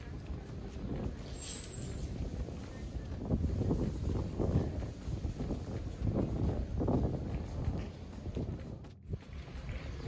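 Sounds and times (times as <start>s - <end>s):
faint outdoor ambience: 0.0s - 10.0s
wind rumbling on microphone: 0.0s - 10.0s.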